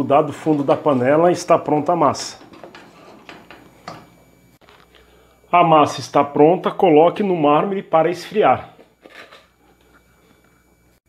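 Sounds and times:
wooden spoon scraping saucepan: 0:02.4 - 0:03.6.

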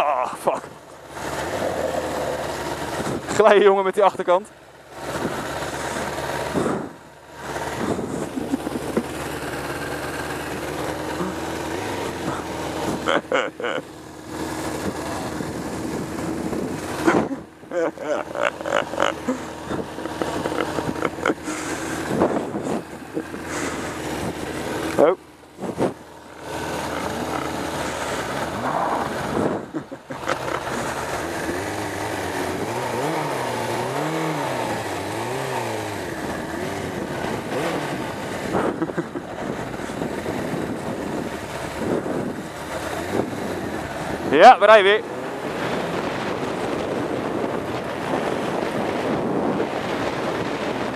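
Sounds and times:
motorcycle engine running: 0:00.0 - 0:50.9
people laughing: 0:08.1 - 0:09.4, 0:12.3 - 0:13.9, 0:17.0 - 0:24.2, 0:29.4 - 0:31.1, 0:38.6 - 0:39.4.

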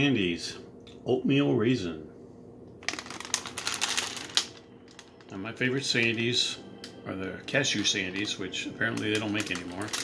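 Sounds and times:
plastic package crinkling: 0:02.8 - 0:06.3, 0:07.6 - 0:10.0.

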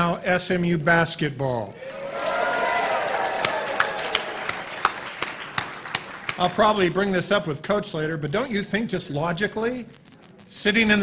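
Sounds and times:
crowd cheering and applauding: 0:01.8 - 0:06.7
man clapping hands: 0:02.2 - 0:06.7.

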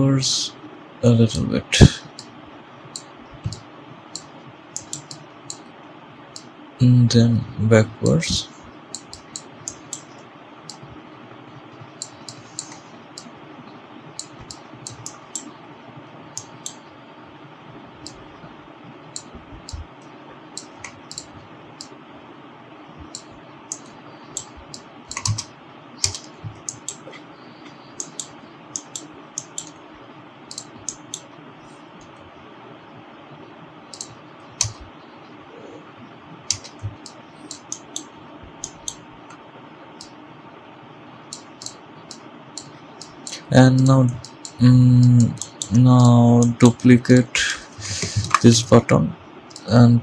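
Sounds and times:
steady background hiss: 0:00.0 - 0:50.0
mouse clicks: 0:04.2 - 0:05.6, 0:23.1 - 0:27.2, 0:27.8 - 0:29.8, 0:33.9 - 0:34.8
computer keyboard clicks: 0:23.1 - 0:27.0.

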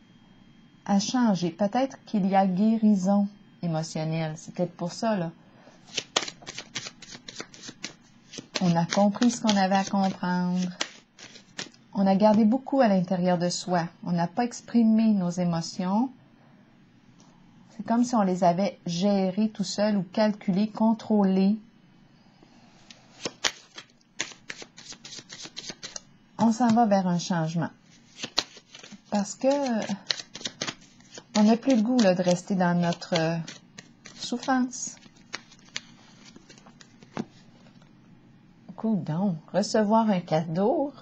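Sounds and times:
cards being shuffled: 0:05.9 - 0:11.8, 0:23.2 - 0:26.8, 0:27.9 - 0:37.8.

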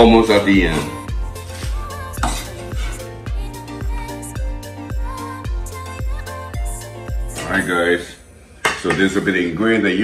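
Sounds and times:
background music with steady beat: 0:00.0 - 0:08.0.

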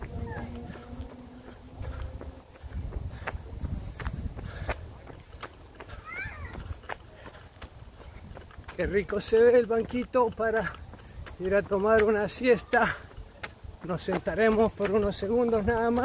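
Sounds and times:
wind rumbling on microphone: 0:00.0 - 0:09.4, 0:13.2 - 0:16.0
footsteps on paved path: 0:00.0 - 0:16.0.

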